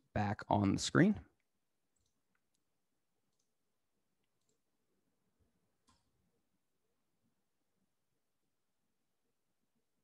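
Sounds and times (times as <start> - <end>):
man speaking: 0.0 - 1.3
computer mouse clicks: 1.9 - 3.6, 4.2 - 4.7, 5.8 - 6.2.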